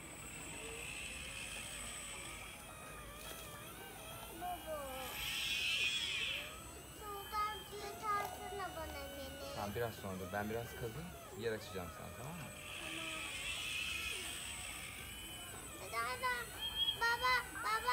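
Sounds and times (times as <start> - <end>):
voices talking: 0.0 - 17.9
whine of electric motors: 0.0 - 17.9.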